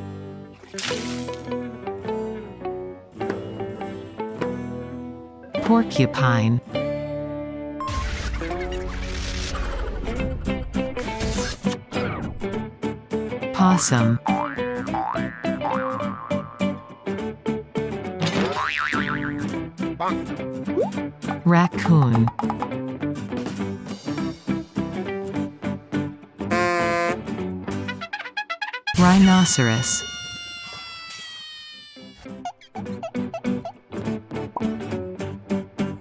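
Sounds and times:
springy boing effects: 0:14.2 - 0:16.9, 0:18.4 - 0:19.4.

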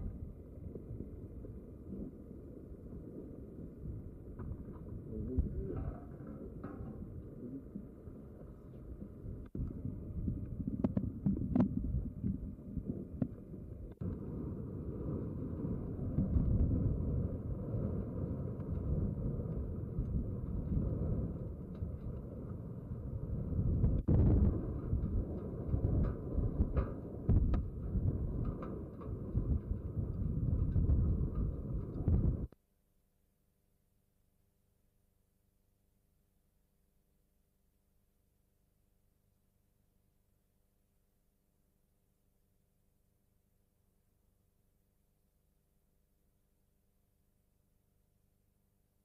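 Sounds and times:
low uneven rumble: 0:00.0 - 0:32.5.

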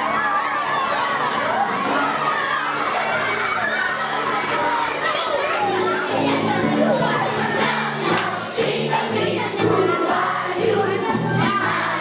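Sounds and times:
children shouting: 0:00.0 - 0:12.0
song over loudspeakers: 0:05.7 - 0:12.0.

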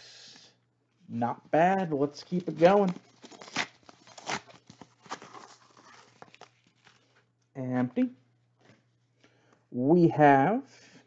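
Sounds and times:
wrapper crinkling and rustling: 0:02.0 - 0:07.3
paper pack ripping: 0:02.1 - 0:07.2.

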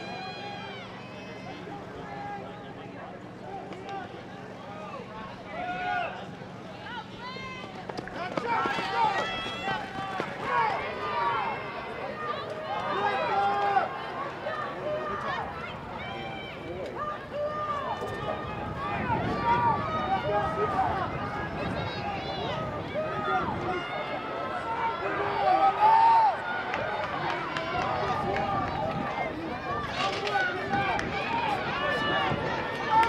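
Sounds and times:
people shouting encouragement: 0:03.5 - 0:33.0.

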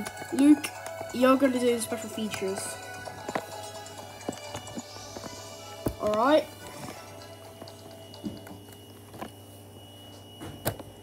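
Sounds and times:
faint menu music: 0:00.0 - 0:11.0
low steady hum: 0:00.0 - 0:11.0.

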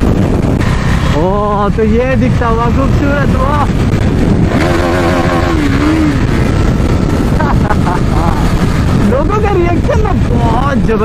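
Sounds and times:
motorcycle engine cruising: 0:00.0 - 0:11.0
wind rushing on microphone: 0:00.0 - 0:11.0.

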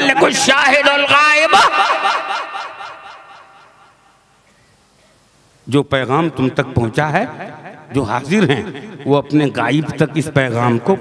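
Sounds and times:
man speaking over loudspeaker: 0:00.0 - 0:02.6, 0:05.7 - 0:11.0
loudspeaker echo: 0:00.0 - 0:04.1, 0:05.7 - 0:11.0.

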